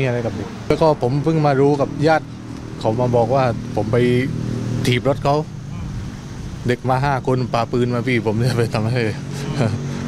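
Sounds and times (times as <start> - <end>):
man speaking: 0.0 - 6.0, 6.6 - 9.3
steady low hum: 0.0 - 10.0.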